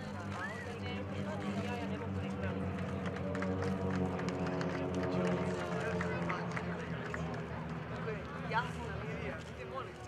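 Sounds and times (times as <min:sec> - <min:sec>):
propeller aircraft engines droning: 0:00.0 - 0:10.0
spectators chattering: 0:00.0 - 0:10.0.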